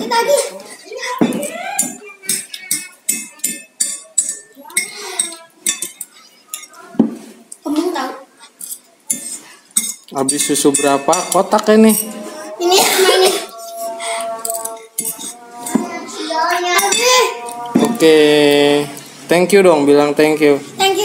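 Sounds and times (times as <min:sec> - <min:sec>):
children's voices: 0:00.0 - 0:08.6, 0:12.2 - 0:18.0, 0:20.6 - 0:21.0
fork clinking on ceramic plate: 0:01.8 - 0:06.8, 0:08.6 - 0:12.2, 0:13.6 - 0:16.0.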